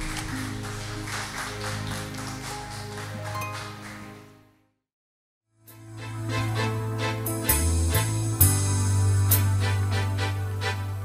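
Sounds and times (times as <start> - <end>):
instrumental music with light beat: 5.7 - 11.0.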